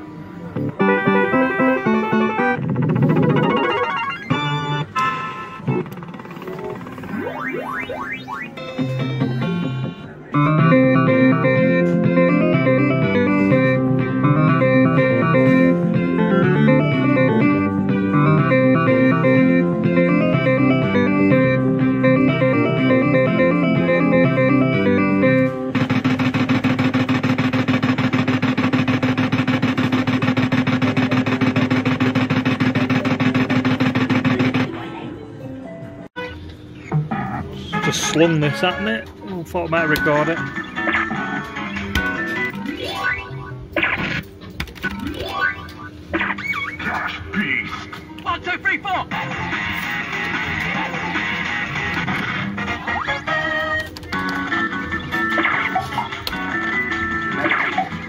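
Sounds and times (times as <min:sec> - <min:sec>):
looping electronic tune: 0:00.6 - 0:34.7
short electronic effects: 0:00.7 - 0:10.5, 0:25.7 - 0:34.8
dense buzzing tone: 0:25.7 - 0:34.7.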